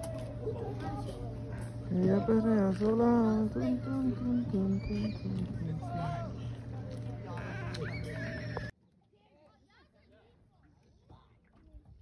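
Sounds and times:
voices: 0.0s - 8.7s
low steady hum: 0.0s - 8.8s.

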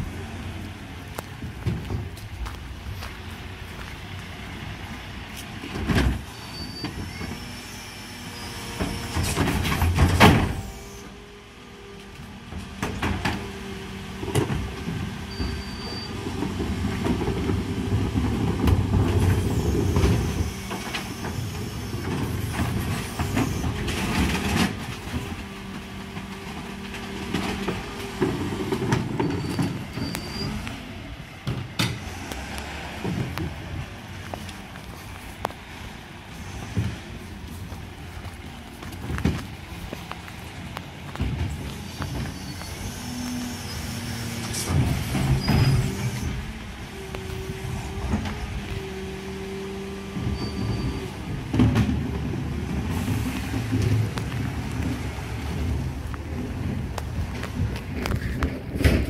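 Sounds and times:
diesel engine running: 0.0s - 59.0s
bins clattering and banging: 14.2s - 30.6s, 40.5s - 42.6s, 50.1s - 59.0s.

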